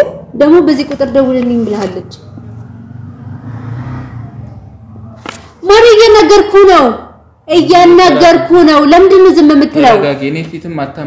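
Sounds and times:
vehicle passing low rumble: 0:00.0 - 0:07.5.

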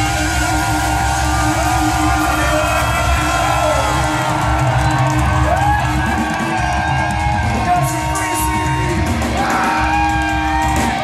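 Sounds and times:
crowd whooping: 0:00.0 - 0:11.0
live punk rock band: 0:00.0 - 0:11.0.

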